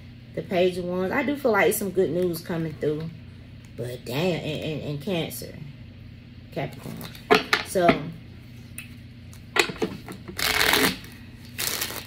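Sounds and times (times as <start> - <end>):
cards being shuffled: 9.8 - 12.0.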